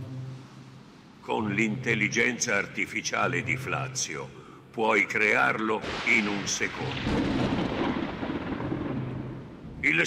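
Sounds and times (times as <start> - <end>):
low steady hum: 0.0 - 6.0
man's voice: 1.2 - 7.0
deep thunder-like rumbling: 5.8 - 10.0.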